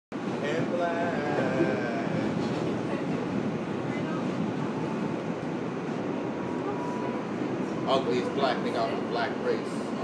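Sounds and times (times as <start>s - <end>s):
subway train rumbling: 0.1s - 10.0s.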